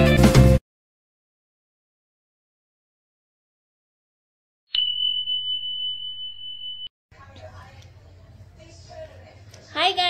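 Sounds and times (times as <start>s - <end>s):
bell ding ringing: 4.7s - 6.9s.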